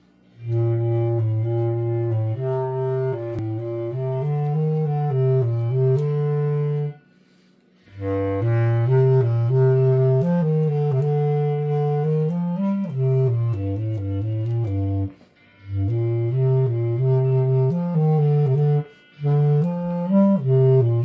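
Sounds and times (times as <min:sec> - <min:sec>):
bass clarinet melody: 0:00.0 - 0:07.1, 0:07.9 - 0:21.0.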